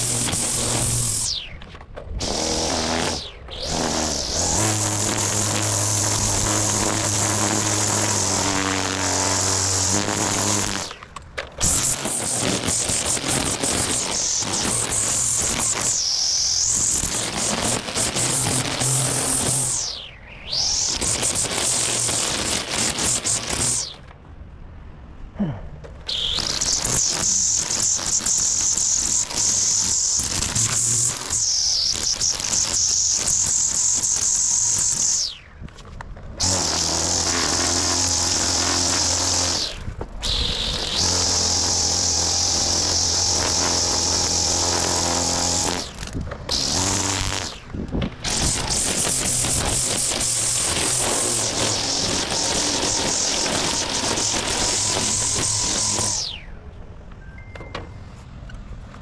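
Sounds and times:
string trimmer whining: 0:00.0 - 0:24.1, 0:26.0 - 0:35.5, 0:36.3 - 0:56.6.

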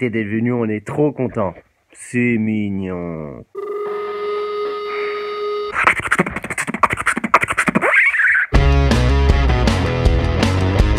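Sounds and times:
electronic telephone tone: 0:03.5 - 0:05.8
rapid rasping sounds: 0:05.7 - 0:08.5.

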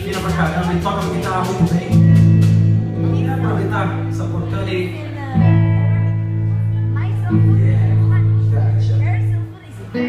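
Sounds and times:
electric guitars and bass chords: 0:00.0 - 0:10.0.

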